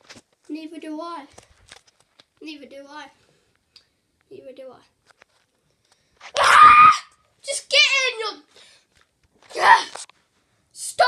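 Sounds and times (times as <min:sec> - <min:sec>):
loud scream: 0:06.3 - 0:07.2, 0:09.5 - 0:10.0.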